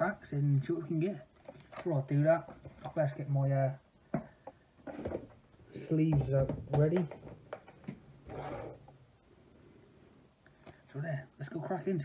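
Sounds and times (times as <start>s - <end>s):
soft handling noise: 0.6s - 9.0s.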